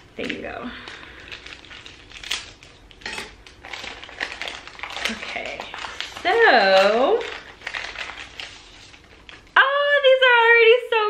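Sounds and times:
package wrapping crinkling: 0.2 - 9.6.

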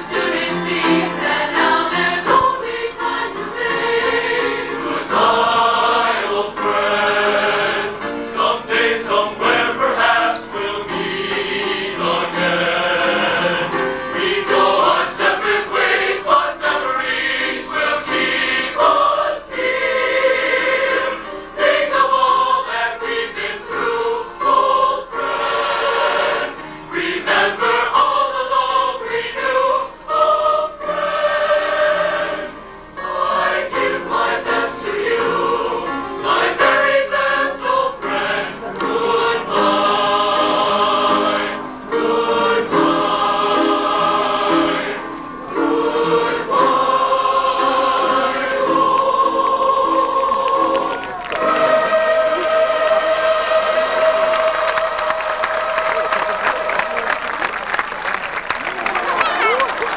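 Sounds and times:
mixed choir singing in parts: 0.0 - 57.9.

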